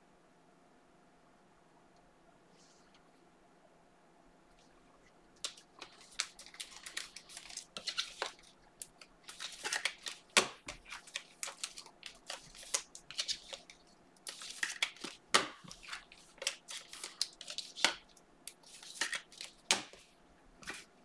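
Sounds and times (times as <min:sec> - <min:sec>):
cards being handled: 0:05.4 - 0:20.0, 0:20.6 - 0:20.9.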